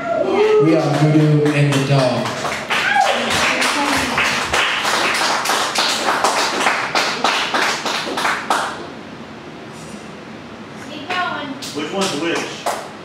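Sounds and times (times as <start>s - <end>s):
audience applauding: 0.3s - 8.9s.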